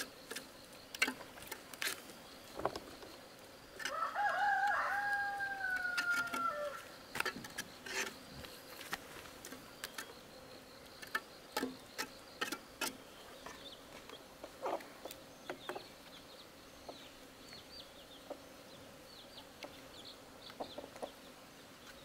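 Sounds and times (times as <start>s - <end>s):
rooster crowing: 3.8s - 6.9s
steel trowel scraping wet cement: 7.2s - 8.2s.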